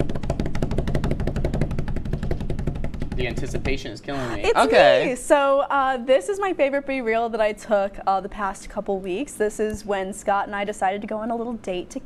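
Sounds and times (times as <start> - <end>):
drum roll: 0.0 - 4.0.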